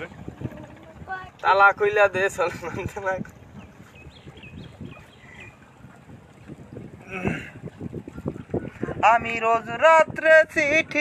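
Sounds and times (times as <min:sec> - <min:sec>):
wind gusting on microphone: 0:00.0 - 0:11.0.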